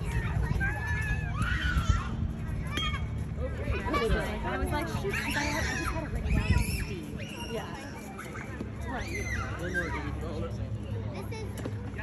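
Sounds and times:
low background rumble: 0.0 - 7.4
spectators' voices: 0.0 - 12.0.

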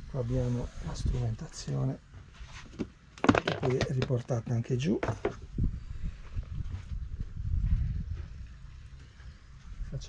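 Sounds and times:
soft knocks: 5.0 - 5.4.

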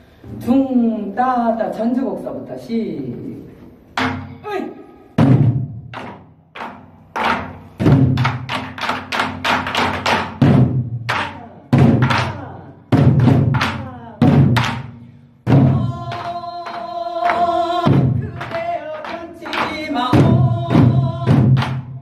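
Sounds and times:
deep drum booms: 5.2 - 6.2, 11.7 - 12.3, 12.9 - 16.2.

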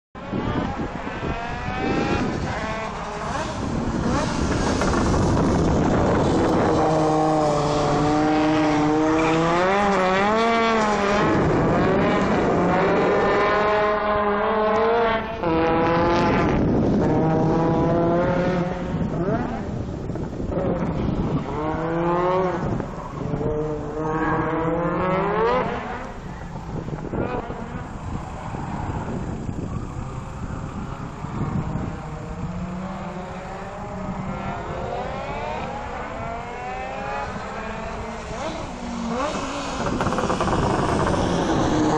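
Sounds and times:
rally car engine accelerating: 0.2 - 41.9.

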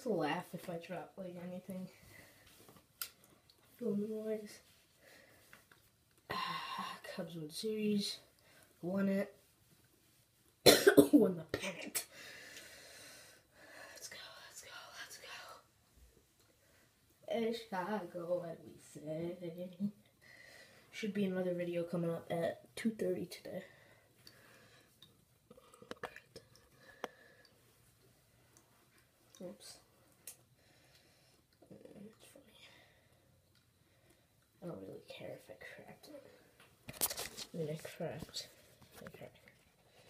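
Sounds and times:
faint whisper: 13.9 - 15.7.

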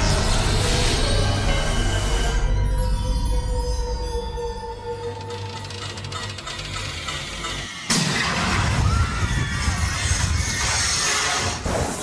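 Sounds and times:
loud crash: 7.9 - 9.4.

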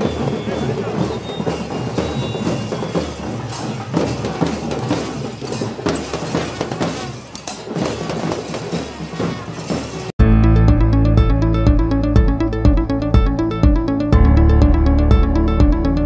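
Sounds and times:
crowd noise: 0.0 - 10.3
drums beaten with sticks: 0.0 - 16.0.

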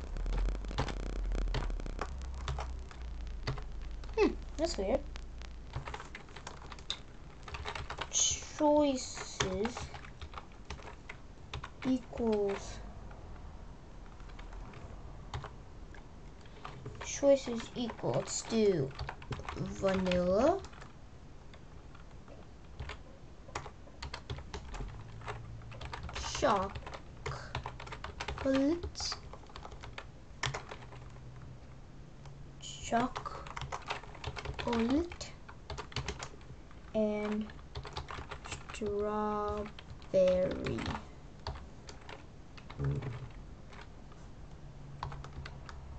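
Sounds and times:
computer keyboard typing: 0.0 - 12.8, 14.0 - 31.5, 32.7 - 43.9, 45.0 - 45.9.

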